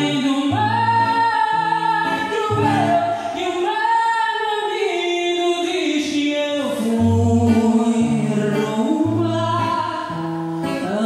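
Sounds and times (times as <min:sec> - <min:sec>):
guitar: 0:00.0 - 0:11.0.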